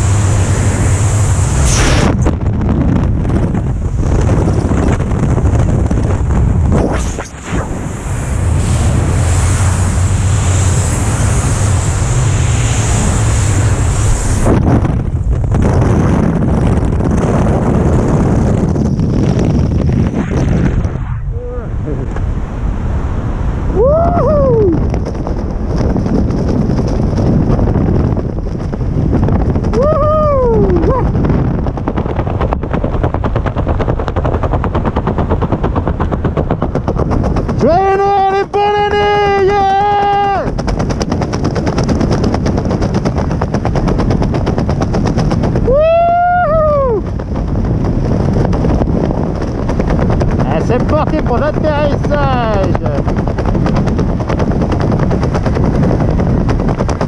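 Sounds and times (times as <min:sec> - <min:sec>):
wind rushing over microphone: 0:00.0 - 0:57.0
parachute fabric flapping: 0:24.6 - 0:38.4, 0:39.3 - 0:57.0.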